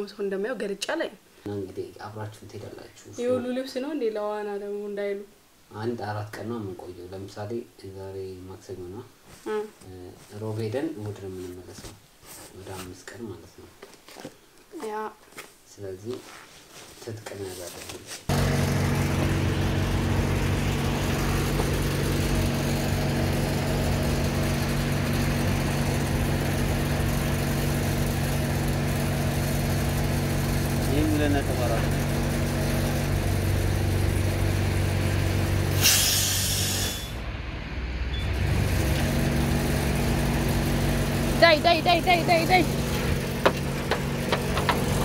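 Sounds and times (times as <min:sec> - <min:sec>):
low machine hum: 0:18.3 - 0:35.8
air hissing: 0:35.7 - 0:37.3.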